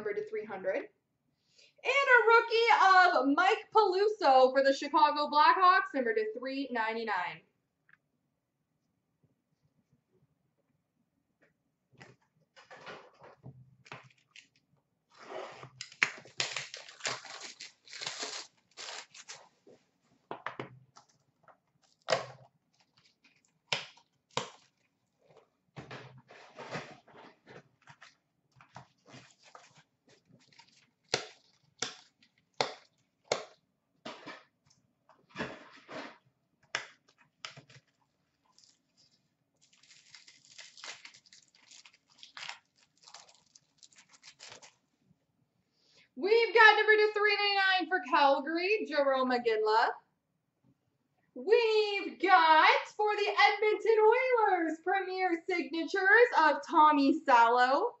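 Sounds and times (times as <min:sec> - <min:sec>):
packaging tearing and crinkling: 0:15.8 - 0:19.6, 0:27.9 - 0:33.0, 0:37.5 - 0:44.8
cards rustling and tapping: 0:27.8 - 0:34.4, 0:36.7 - 0:38.0.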